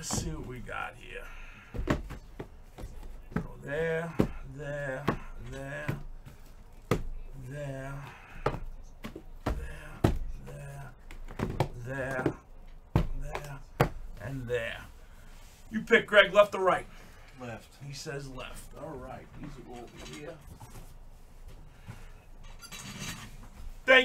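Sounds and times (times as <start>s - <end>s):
man talking: 0.0s - 1.6s, 3.0s - 6.2s, 7.3s - 8.4s, 11.7s - 12.4s, 13.0s - 15.0s, 15.7s - 20.5s.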